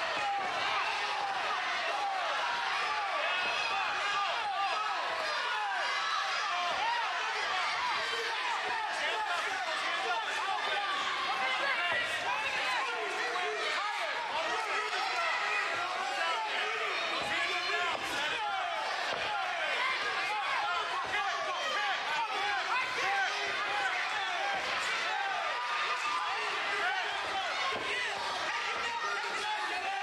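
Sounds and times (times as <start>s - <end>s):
crowd shouting and cheering: 0.0s - 30.0s.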